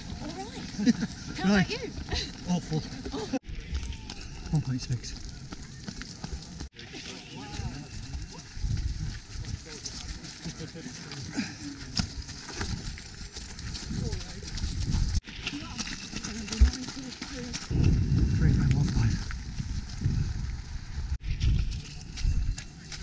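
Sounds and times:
footsteps crunching on shingle: 3.1 - 20.7.

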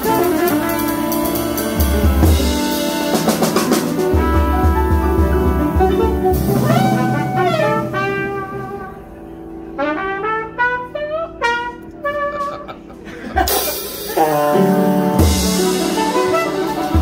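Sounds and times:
saxophone: 0.0 - 12.9, 14.1 - 17.0
trumpet: 0.0 - 13.0, 14.1 - 17.0
drum kit: 0.0 - 17.0
jazz band: 0.0 - 17.0.

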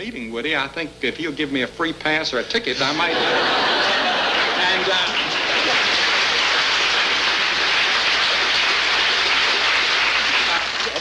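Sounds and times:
audience laughter: 2.8 - 8.6
audience applauding: 3.0 - 11.0.

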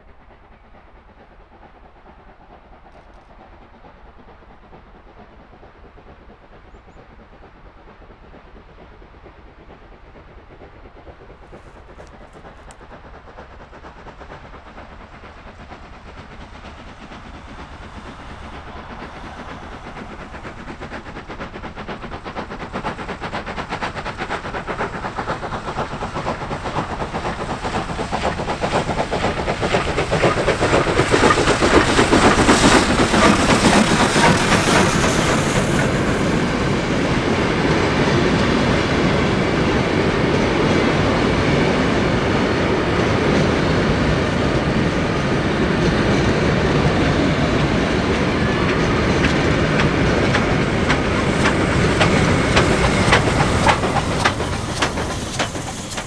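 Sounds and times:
steam locomotive exhaust beats: 0.0 - 56.0.

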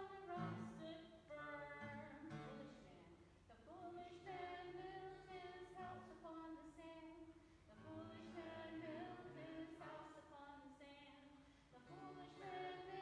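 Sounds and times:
acoustic guitar: 0.0 - 13.0
faint person singing: 0.0 - 13.0.

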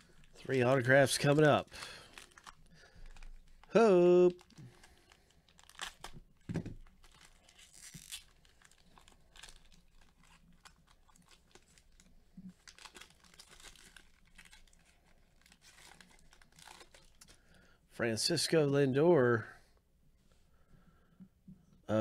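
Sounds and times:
foil wrapper ripping: 0.0 - 6.2, 6.8 - 17.4
foil wrapper crinkling: 0.0 - 17.5.

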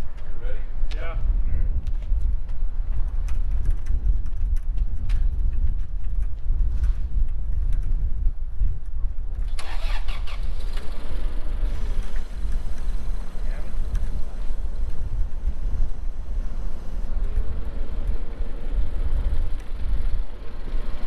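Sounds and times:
forklift engine rumbling: 9.4 - 21.0.

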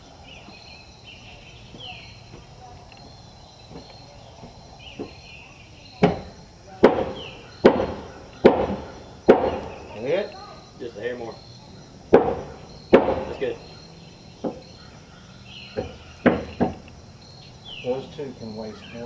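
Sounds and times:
hammer striking wooden boards: 6.0 - 9.9, 12.1 - 13.5, 15.7 - 16.8.

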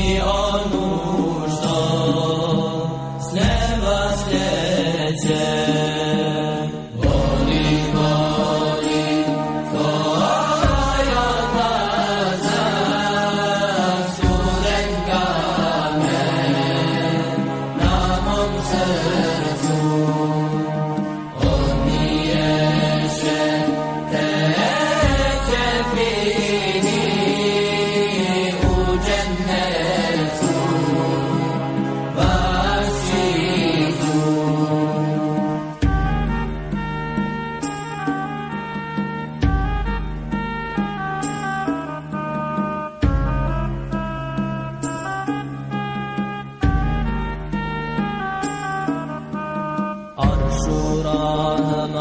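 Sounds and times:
solo voice chanting: 50.2 - 52.0.

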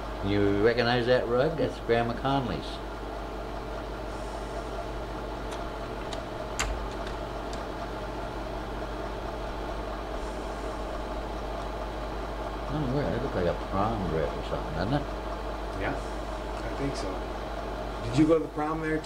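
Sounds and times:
projector fan hum: 0.0 - 19.0.

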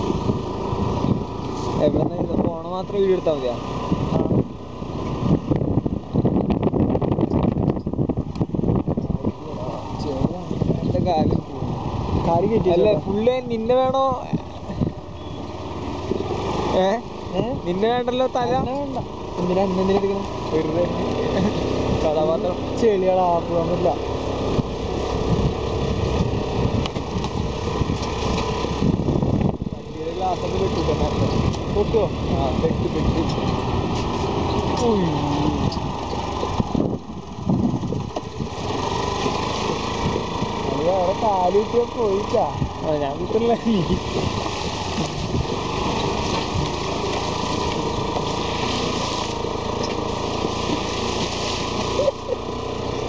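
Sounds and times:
wind on microphone: 0.0 - 2.6, 3.7 - 15.3, 24.3 - 30.0, 31.0 - 40.7, 43.6 - 52.1
small motorbike engine running: 0.0 - 53.0.

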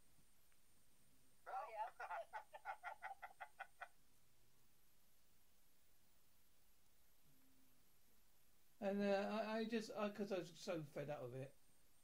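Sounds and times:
person laughing: 1.5 - 3.9.

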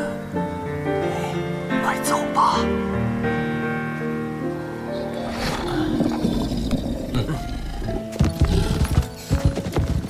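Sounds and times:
background score music: 0.0 - 10.0
heavy footsteps on wooden bridge: 5.7 - 10.0.

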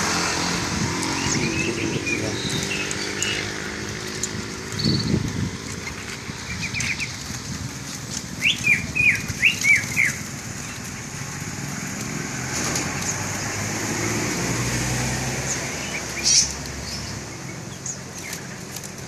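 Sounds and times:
songbirds chirping: 0.0 - 19.0.

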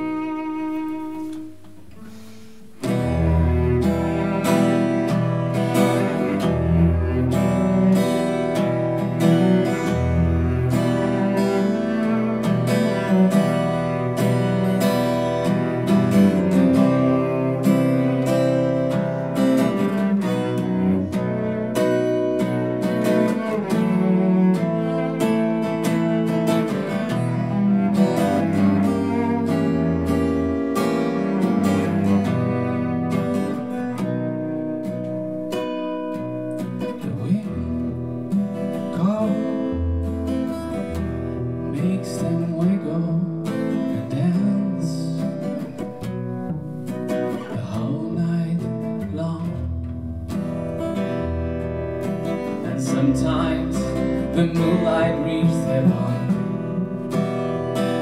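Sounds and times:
cello long low notes: 0.0 - 46.7, 47.3 - 58.0
acoustic guitar strumming: 0.0 - 58.0.

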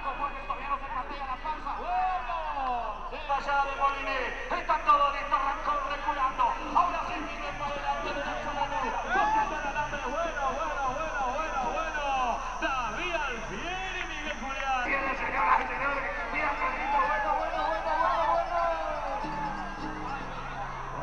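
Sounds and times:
spectators shouting and talking: 0.0 - 21.0
steady low hum: 0.0 - 21.0.

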